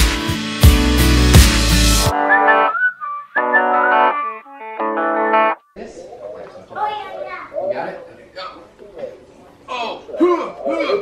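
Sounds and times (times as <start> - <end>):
electric guitar music with effects: 0.0 - 5.7
indistinct voices in a room: 5.6 - 11.0.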